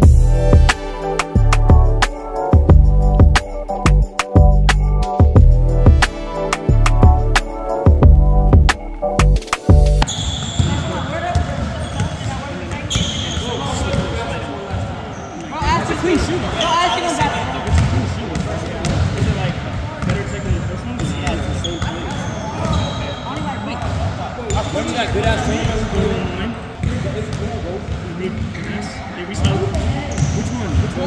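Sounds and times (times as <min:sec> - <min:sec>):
basketballs bouncing on hardwood: 0:17.7 - 0:19.3.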